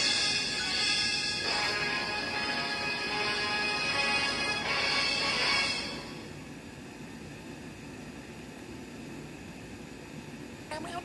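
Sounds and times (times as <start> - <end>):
background hiss: 0.0 - 10.7.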